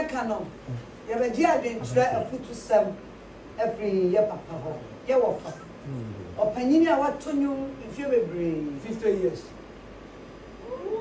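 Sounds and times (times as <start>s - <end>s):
person speaking: 0.0s - 3.0s, 3.7s - 9.1s
vocal cry: 5.8s - 6.4s.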